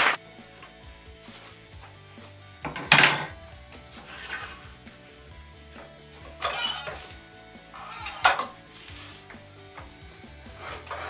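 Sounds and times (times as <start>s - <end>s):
wood rubbing: 1.2s - 5.0s, 5.7s - 11.0s
wooden board knocking on metal: 2.6s - 3.3s.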